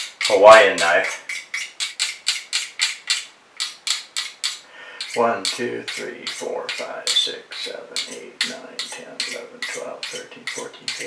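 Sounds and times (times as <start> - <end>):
knife scraping through sharpener: 1.0 - 11.0.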